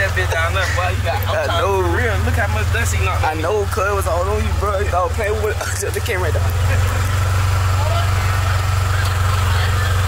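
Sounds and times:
vehicle engine idling: 0.0 - 10.0.

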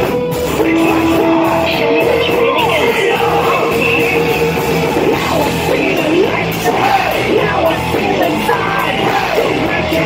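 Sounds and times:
drum kit: 0.0 - 10.0
electric guitar: 0.0 - 10.0
person yelling vocals: 0.6 - 4.2.

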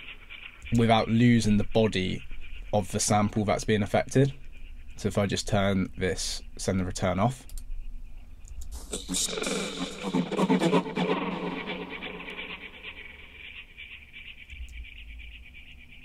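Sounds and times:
glitched vocal sample: 8.7 - 13.6.

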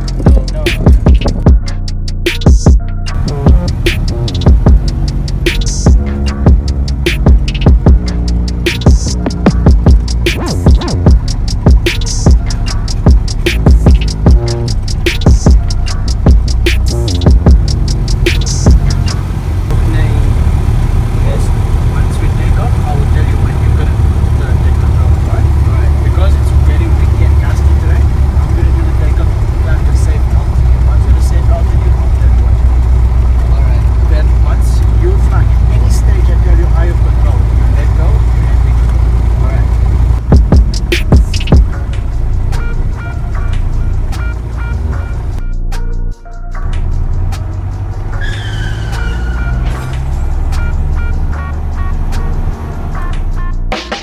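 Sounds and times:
synth background music: 0.0 - 54.0
propeller plane engine drone: 3.1 - 45.9, 49.0 - 53.6.

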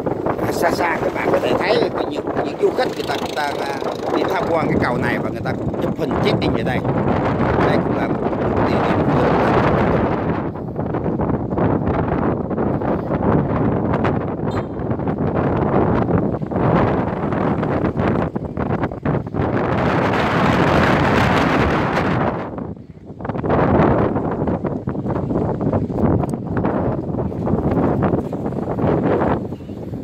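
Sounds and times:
wind buffeting microphone: 0.0 - 30.0.

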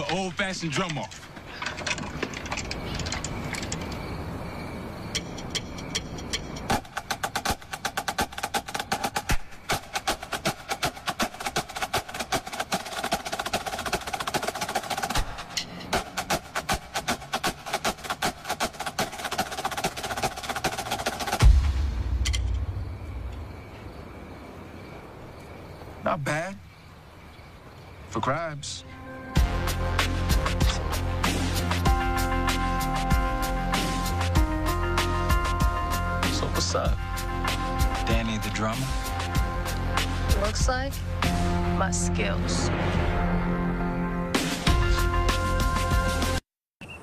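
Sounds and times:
marching snare drums: 6.7 - 22.3
heavy low thump: 21.4 - 23.9.

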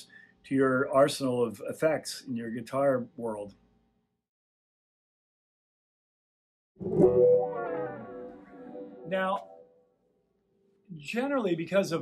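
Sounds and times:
electric guitar wah chord ringing: 6.8 - 9.7.

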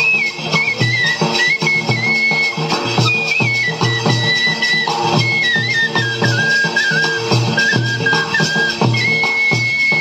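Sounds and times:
high-pitched flute melody: 0.0 - 10.0.

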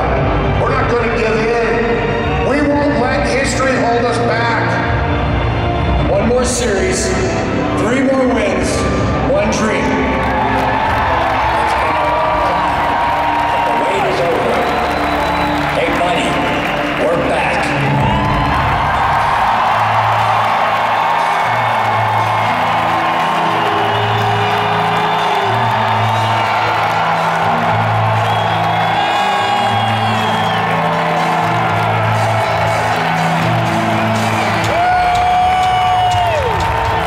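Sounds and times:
arena crowd cheering: 0.0 - 37.0
whoops and whistles: 14.4 - 15.8, 28.1 - 31.0.

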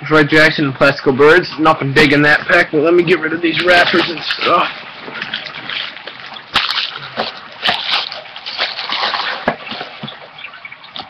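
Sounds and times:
plastic wrappers crinkling: 4.4 - 10.3.

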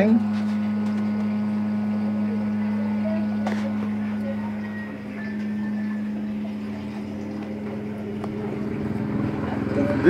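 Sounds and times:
motor humming: 0.0 - 10.0.

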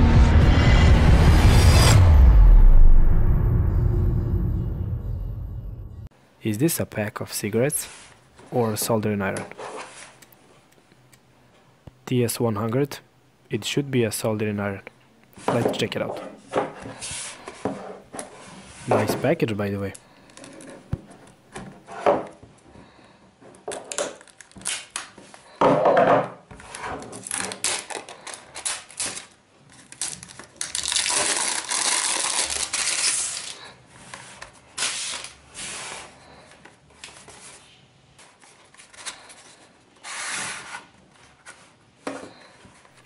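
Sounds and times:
knife scraping plastic wrap: 23.8 - 25.4, 26.6 - 36.4, 38.5 - 41.0
cellophane crinkling: 24.0 - 25.2, 27.1 - 33.8.

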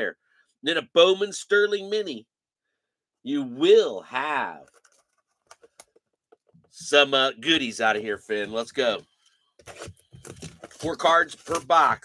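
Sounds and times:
wrapping crinkling and tearing: 9.6 - 12.0.

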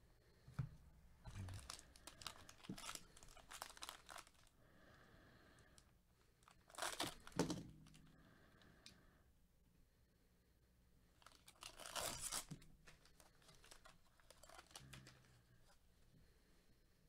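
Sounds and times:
foil wrapper crinkling: 1.3 - 4.5, 6.4 - 7.4, 11.2 - 15.3.

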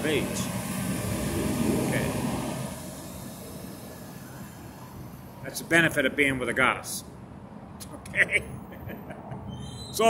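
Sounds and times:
passing vehicle rumble: 0.0 - 6.5.

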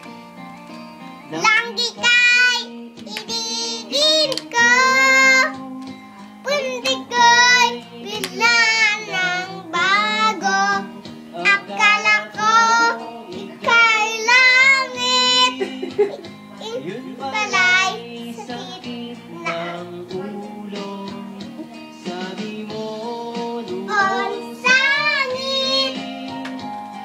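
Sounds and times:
background music: 0.0 - 27.0
child singing in high voice: 1.4 - 5.6, 6.4 - 15.6, 16.6 - 20.0, 23.7 - 26.1.

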